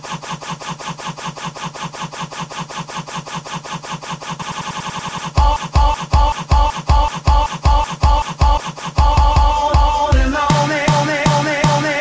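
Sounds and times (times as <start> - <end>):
looped song stutter: 0.0 - 12.0.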